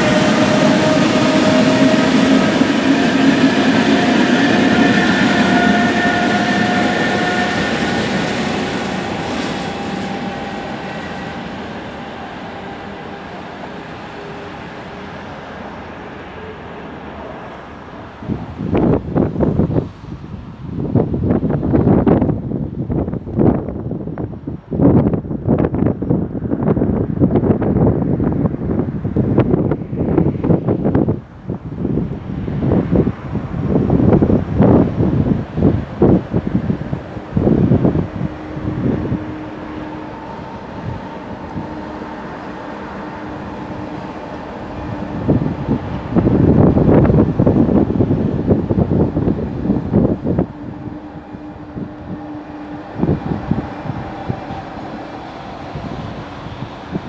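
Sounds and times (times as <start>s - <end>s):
distant electric train passing: 0.0s - 57.0s
train drive whine: 0.0s - 57.0s
wind buffeting microphone: 0.0s - 57.0s.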